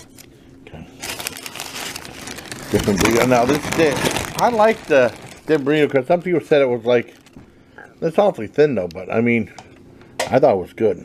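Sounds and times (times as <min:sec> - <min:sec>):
paper wrapper crinkling: 0:01.0 - 0:07.4.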